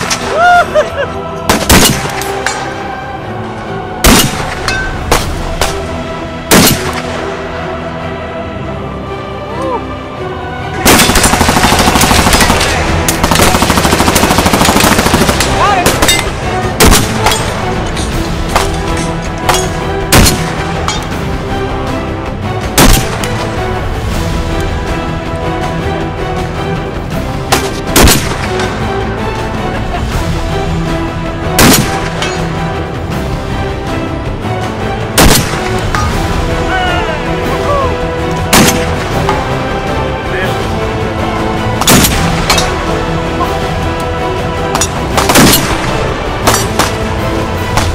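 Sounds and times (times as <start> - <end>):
background music: 0.0 - 47.9
rifle shots: 1.5 - 2.2, 4.0 - 5.8, 6.5 - 7.1, 10.8 - 17.5, 19.6 - 20.6, 22.8 - 23.2, 27.6 - 28.5, 31.6 - 32.2, 35.2 - 35.8, 38.5 - 39.0, 45.1 - 45.9.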